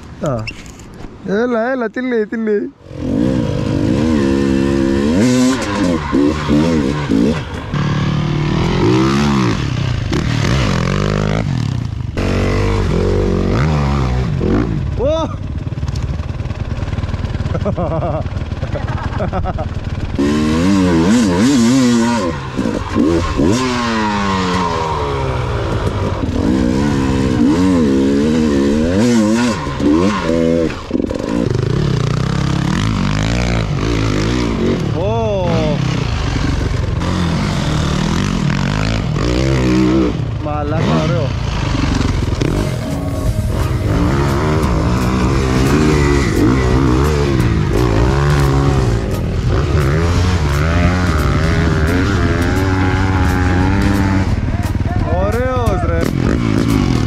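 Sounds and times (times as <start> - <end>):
dirt bike engines revving: 0.0 - 57.0.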